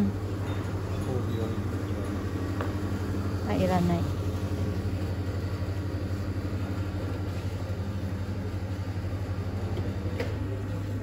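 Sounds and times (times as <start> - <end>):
low machine hum with pulsing: 0.0 - 11.0.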